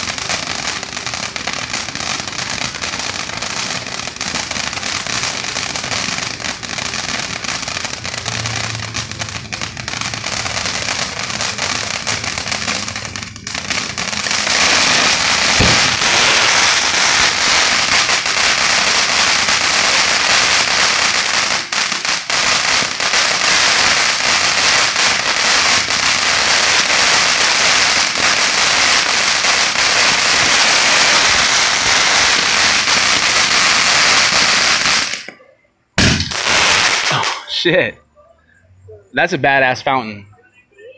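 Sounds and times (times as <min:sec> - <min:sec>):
firework fountain hissing: 0:00.0 - 0:35.4, 0:36.0 - 0:37.9.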